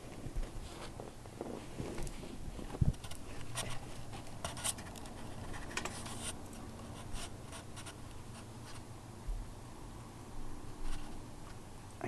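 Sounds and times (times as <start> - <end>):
quiet scratching and rubbing: 0.1 - 8.9, 10.8 - 11.2.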